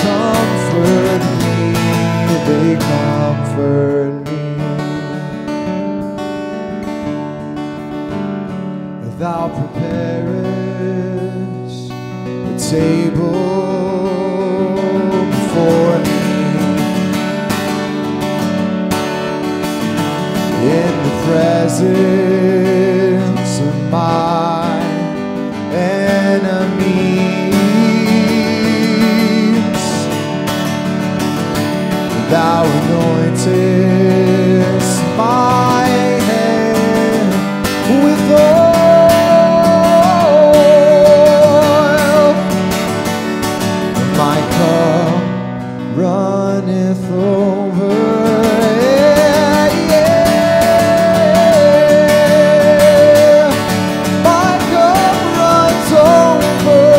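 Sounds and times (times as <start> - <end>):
man singing: 0.0 - 5.7, 8.9 - 18.2, 20.2 - 30.4, 32.0 - 56.9
acoustic guitar strumming: 0.0 - 56.9.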